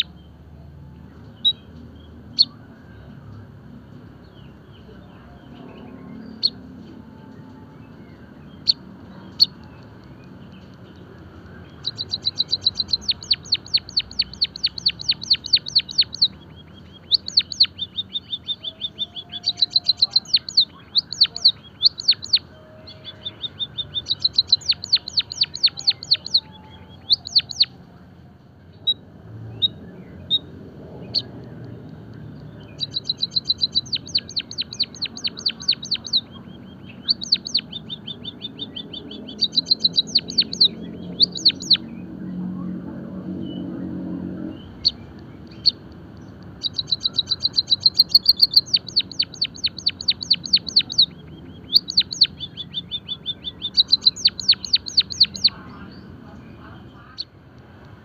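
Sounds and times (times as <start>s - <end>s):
small bird singing: 0.0s - 58.0s.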